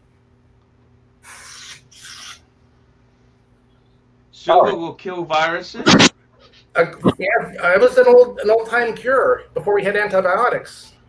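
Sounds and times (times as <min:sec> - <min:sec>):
short hissing noises: 0:01.2 - 0:02.5
faint steady hum: 0:01.8 - 0:11.0.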